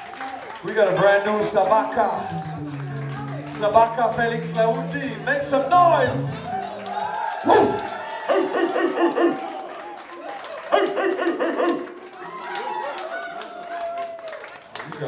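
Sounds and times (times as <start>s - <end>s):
bass: 0.6s - 8.0s
saxophone phrases: 2.1s - 9.0s.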